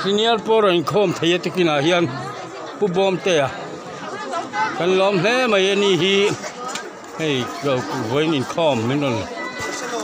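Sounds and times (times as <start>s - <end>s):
several voices chattering: 0.0s - 10.0s.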